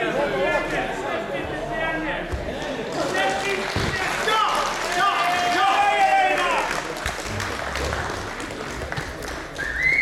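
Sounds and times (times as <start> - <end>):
noisy indoor hall: 0.0 - 10.0
loud wavering whistle: 9.6 - 10.0.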